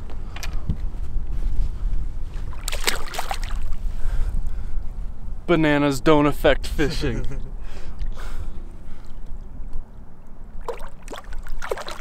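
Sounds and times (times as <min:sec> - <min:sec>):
water splashing: 0:02.5 - 0:03.8, 0:10.4 - 0:12.0.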